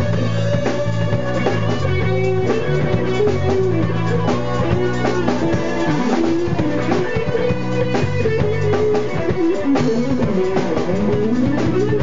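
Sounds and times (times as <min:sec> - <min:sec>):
drums steady beat: 0:00.0 - 0:12.0
rock band playing: 0:00.0 - 0:12.0
running bass line: 0:00.0 - 0:12.0
sliding lead melody: 0:00.0 - 0:12.0.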